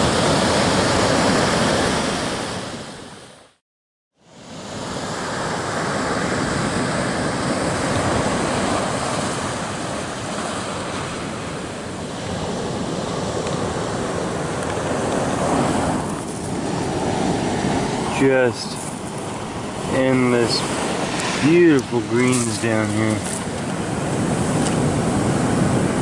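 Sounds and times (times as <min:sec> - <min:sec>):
surf washing onto pebble beach: 0:04.4 - 0:26.0
wind on microphone: 0:04.8 - 0:26.0.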